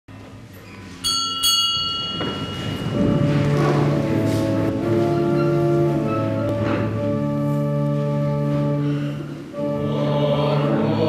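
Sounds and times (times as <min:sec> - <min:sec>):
small bell struck: 0:01.0 - 0:02.8
held music chords: 0:01.0 - 0:11.0
soft background music: 0:01.9 - 0:11.0.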